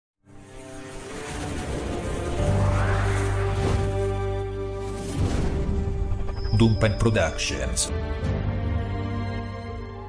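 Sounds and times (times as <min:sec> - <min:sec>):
synth drone: 0:00.3 - 0:06.8
rushing noise: 0:00.3 - 0:06.9.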